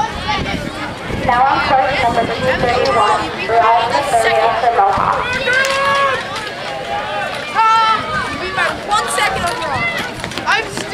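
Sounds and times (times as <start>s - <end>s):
people shouting and cheering: 0.0s - 10.9s.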